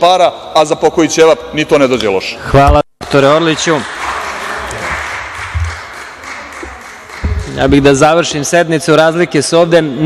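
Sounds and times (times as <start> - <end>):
group applause: 3.0 - 8.0.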